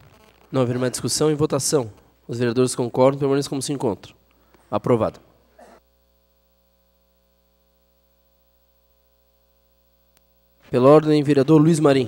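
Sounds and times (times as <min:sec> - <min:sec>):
faint electrical hum: 0:00.0 - 0:12.0
man speaking: 0:00.5 - 0:05.3, 0:10.7 - 0:12.0.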